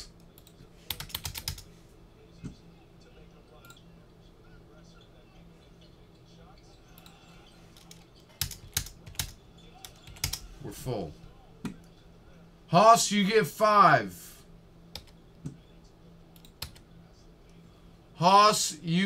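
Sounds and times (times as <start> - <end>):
computer keyboard typing: 0.0 - 1.7, 7.7 - 10.4, 14.9 - 15.2, 16.4 - 16.8
faint steady hum: 0.0 - 19.0.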